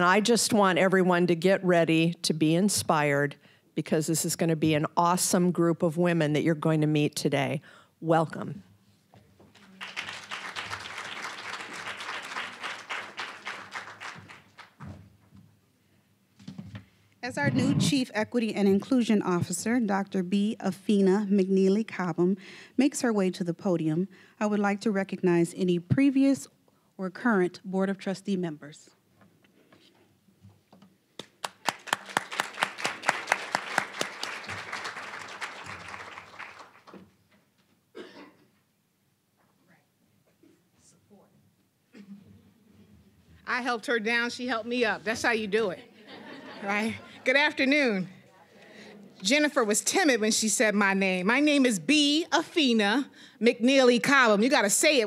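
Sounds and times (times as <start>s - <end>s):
audience applauding: 9.5s - 14.8s, 31.2s - 37.0s.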